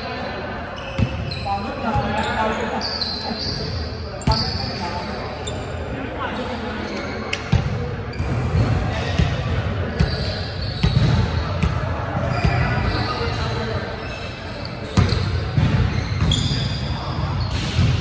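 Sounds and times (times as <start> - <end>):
ball bouncing on wooden gym floor: 9.1 - 12.7.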